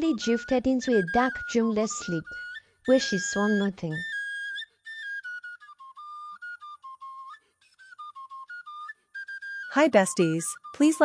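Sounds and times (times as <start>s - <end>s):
flute-like melody: 0.0s - 11.0s.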